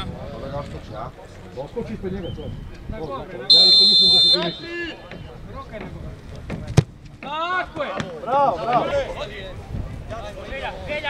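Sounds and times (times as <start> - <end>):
players shouting: 3.4 - 5.3
referee's whistle blast: 3.5 - 4.8.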